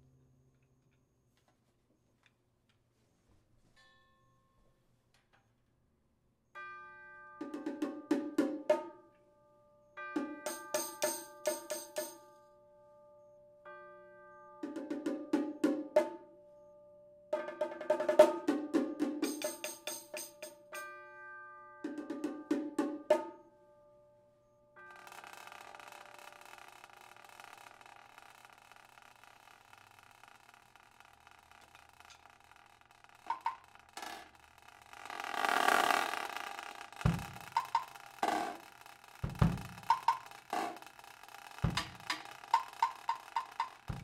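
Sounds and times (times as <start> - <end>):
cymbal ringing: 10.0 - 12.2, 17.4 - 23.3, 24.8 - 27.8, 35.0 - 44.0
drum stick strokes: 10.2 - 12.2, 17.4 - 20.9, 33.2 - 44.0
deep drum hits: 37.1 - 37.8, 39.2 - 40.1, 41.6 - 42.2.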